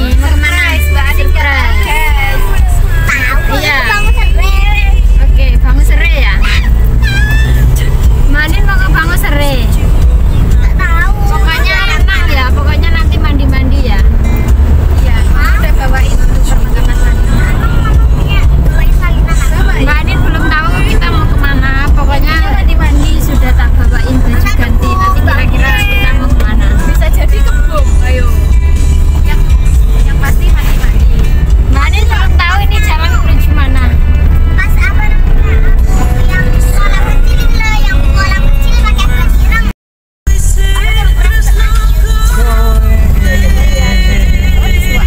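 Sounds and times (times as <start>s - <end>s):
car cabin rumble: 0.0s - 39.7s, 40.3s - 45.0s
music: 0.0s - 39.7s, 40.3s - 45.0s
voices: 0.0s - 39.7s, 40.4s - 45.0s.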